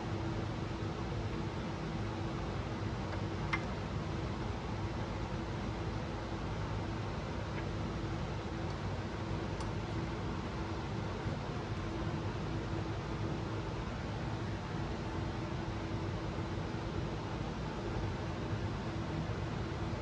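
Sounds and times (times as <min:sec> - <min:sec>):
workshop room hum and hiss: 0:00.0 - 0:20.0.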